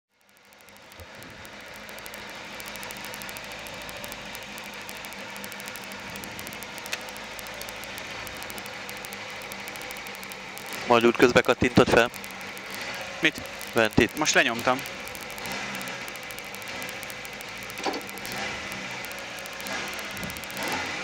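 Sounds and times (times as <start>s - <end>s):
sharp click: 0.2s - 21.0s
car engine idling: 0.4s - 21.0s.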